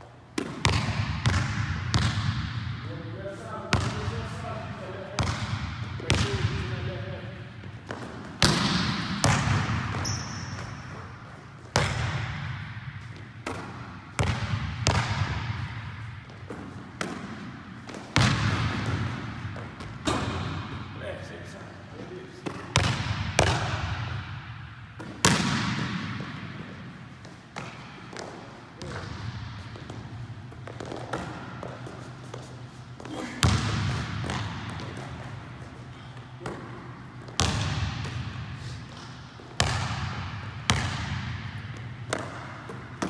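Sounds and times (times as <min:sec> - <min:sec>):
echo in large hall: 0:00.0 - 0:43.0.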